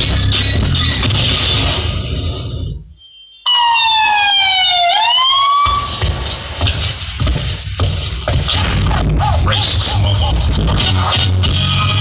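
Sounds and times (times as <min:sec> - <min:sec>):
dance music over loudspeakers: 0:00.0 - 0:01.9, 0:05.6 - 0:12.0
siren sound effect: 0:02.9 - 0:06.1.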